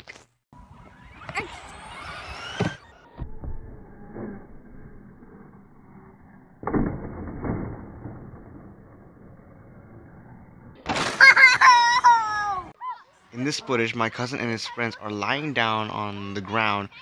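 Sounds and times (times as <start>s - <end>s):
person laughing high-pitched: 11.2s - 12.7s.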